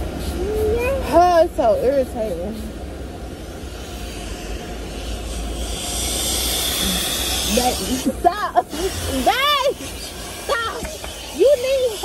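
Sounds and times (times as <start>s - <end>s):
woman laughing: 7.8s - 9.5s.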